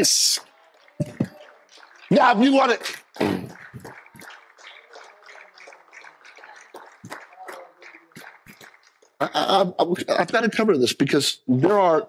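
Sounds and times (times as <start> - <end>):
people clapping: 0.0 - 10.0.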